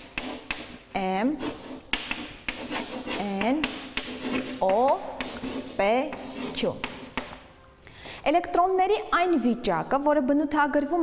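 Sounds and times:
chalk scratching on a blackboard: 0:00.0 - 0:07.4.

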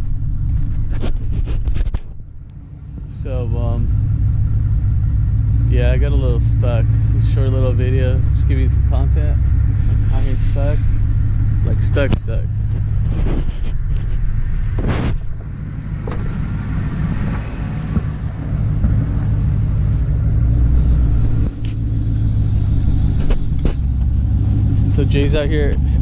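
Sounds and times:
truck engine idling: 0:00.0 - 0:01.4, 0:02.1 - 0:26.0.

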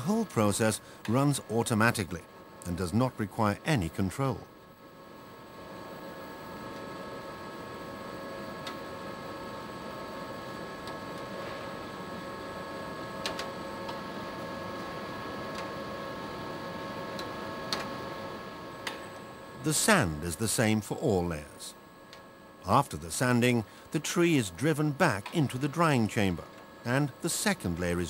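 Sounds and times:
machine whirring and humming: 0:00.0 - 0:28.0.

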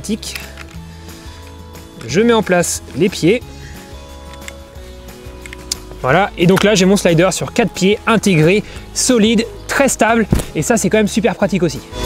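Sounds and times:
background music with sustained notes: 0:00.0 - 0:12.0
faint clicks of slider legs locking: 0:04.2 - 0:04.6.

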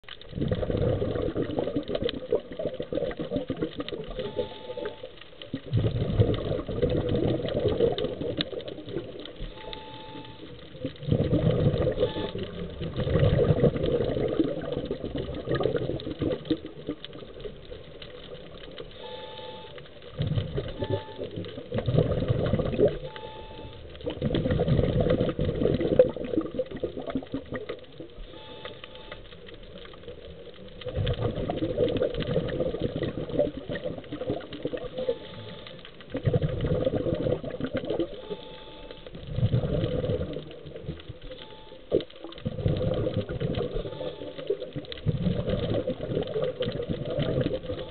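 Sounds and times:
bubbly underwater exhalations: 0:00.3 - 0:18.6, 0:20.1 - 0:29.0, 0:29.8 - 0:38.5, 0:39.2 - 0:41.2, 0:41.9 - 0:47.9.

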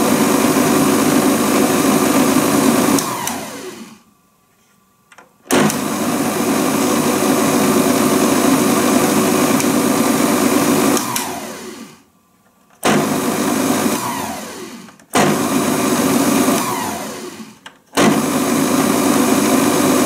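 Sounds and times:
food processor motor running: 0:00.0 - 0:04.0, 0:05.5 - 0:12.1, 0:12.8 - 0:20.0
motor winding down whine: 0:00.0 - 0:04.0, 0:05.5 - 0:12.1, 0:12.8 - 0:20.0.

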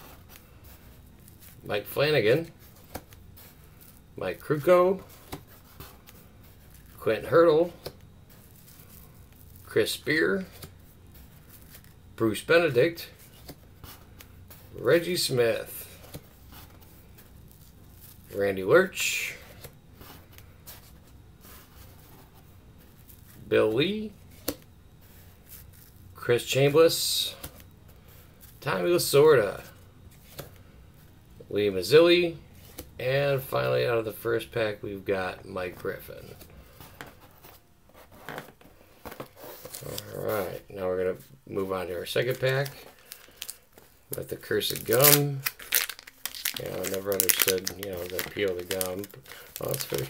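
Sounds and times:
wax-paper wrappers rustling: 0:00.0 - 0:31.1, 0:35.0 - 0:50.0
low steady hiss and hum: 0:00.0 - 0:50.0.

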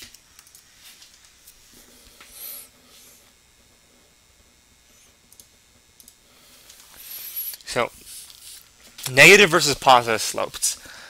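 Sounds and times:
computer mouse clicks: 0:05.3 - 0:07.6.

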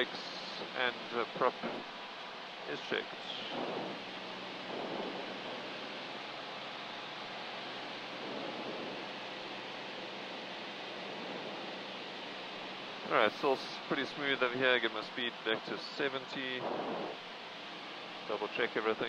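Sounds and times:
light aircraft engine and propeller: 0:00.0 - 0:19.0.

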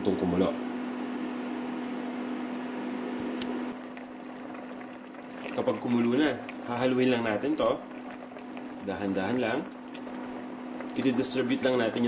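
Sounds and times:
steady low hum: 0:00.0 - 0:12.0
heating liquid hissing: 0:02.9 - 0:12.0.

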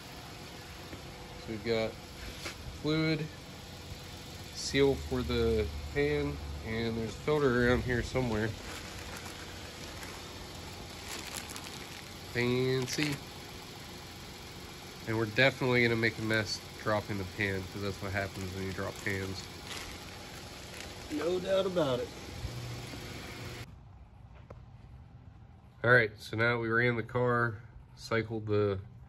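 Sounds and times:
steady low hum: 0:00.0 - 0:29.0
plastic packaging crinkling: 0:08.3 - 0:13.2, 0:18.6 - 0:21.3.

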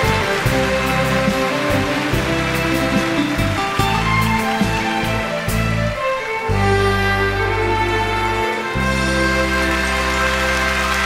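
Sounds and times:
live band instrumental music: 0:00.0 - 0:11.0.

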